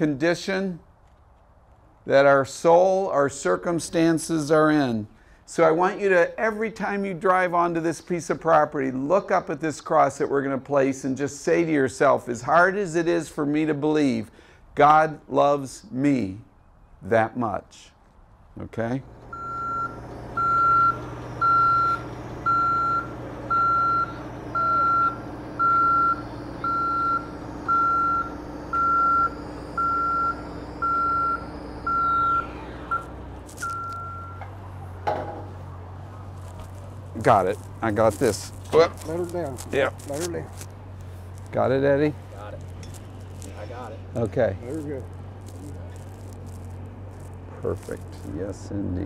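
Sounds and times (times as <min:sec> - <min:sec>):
low engine drone: 0:18.8 - 0:49.0
backup warning beeps: 0:19.3 - 0:34.7.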